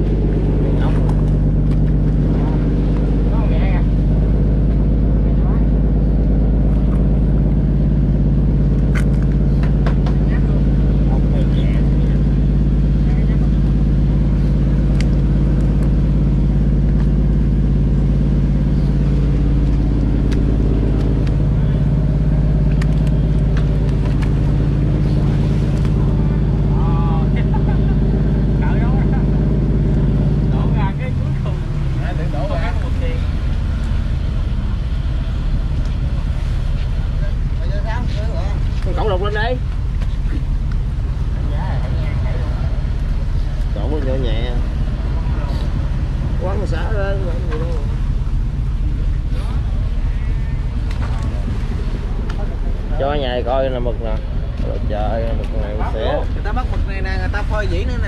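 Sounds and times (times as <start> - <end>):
boat engine droning: 0.0 - 58.0.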